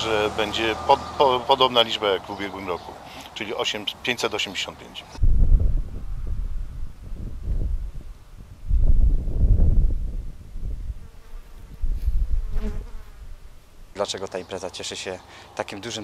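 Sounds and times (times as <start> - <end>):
wind buffeting microphone: 5.2 - 13.9.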